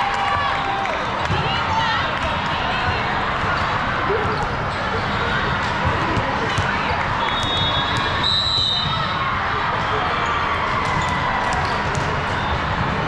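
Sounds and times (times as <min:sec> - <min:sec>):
murmur of many voices: 0:00.0 - 0:13.0.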